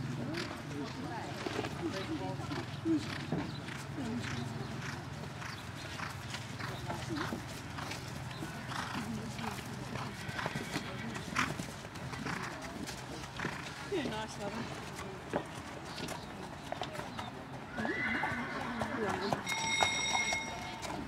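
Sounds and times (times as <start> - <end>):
horse hoofbeats on turf: 0.1 - 21.0.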